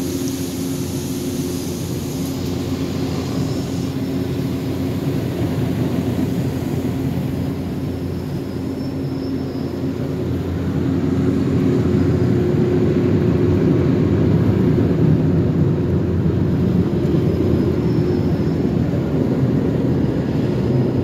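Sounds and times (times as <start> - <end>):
car wash machinery roar: 0.0 - 21.0.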